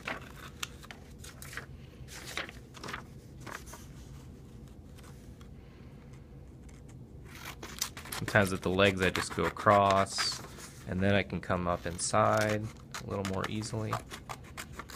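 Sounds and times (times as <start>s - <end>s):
scissors snipping paper: 6.7s - 10.4s, 11.7s - 14.9s.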